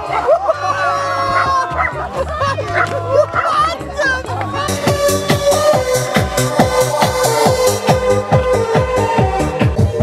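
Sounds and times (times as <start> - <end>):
electronic music with bass beat: 0.9 - 10.0
dog barking: 2.7 - 3.6.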